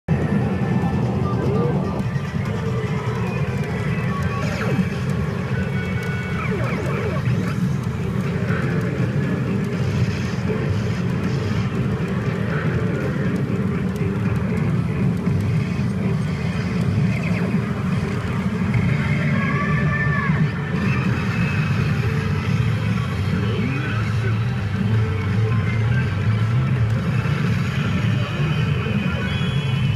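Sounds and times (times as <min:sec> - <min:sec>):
pachinko machine music and effects: 0:00.1 - 0:19.4
din of pachinko machines: 0:00.1 - 0:29.9.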